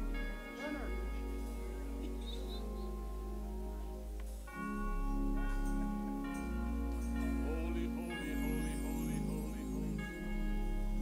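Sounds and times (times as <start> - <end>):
church music held chords: 0.0 - 11.0.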